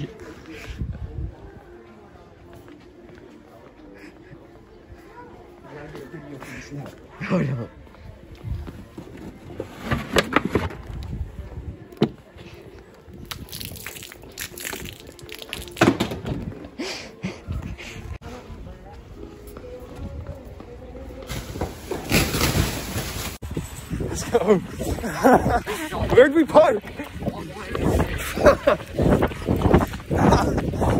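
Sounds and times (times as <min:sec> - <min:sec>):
muffled voices: 0:00.0 - 0:22.8, 0:23.9 - 0:30.9.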